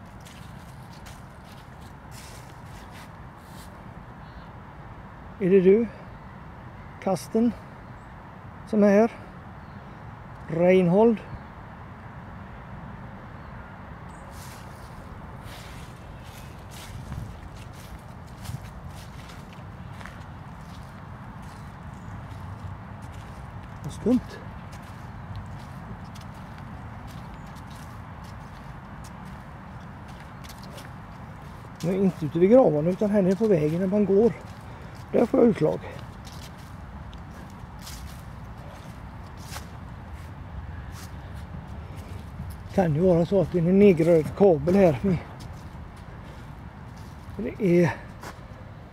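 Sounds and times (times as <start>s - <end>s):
footsteps on dry leaves: 0.0s - 3.9s, 14.2s - 48.5s
leaves crackling underfoot: 0.0s - 3.9s, 14.1s - 48.6s
steady low rumble: 14.4s - 48.9s.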